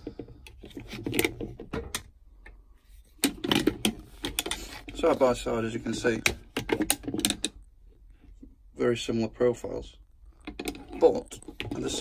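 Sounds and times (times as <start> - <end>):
plastic clamps clicking and knocking: 3.2 - 4.7, 6.1 - 7.6.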